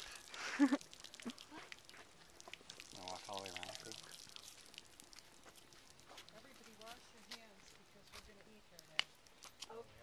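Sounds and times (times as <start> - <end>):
water splashing onto concrete: 0.0 - 10.0.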